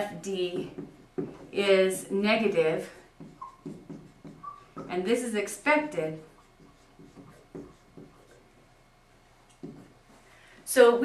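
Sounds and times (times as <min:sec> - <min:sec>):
marker writing on whiteboard: 0:00.0 - 0:08.8, 0:09.5 - 0:10.2.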